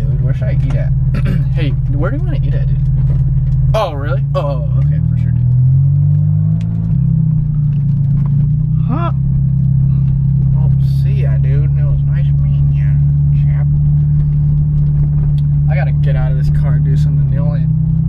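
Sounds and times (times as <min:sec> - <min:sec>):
car engine droning: 0:00.0 - 0:18.0.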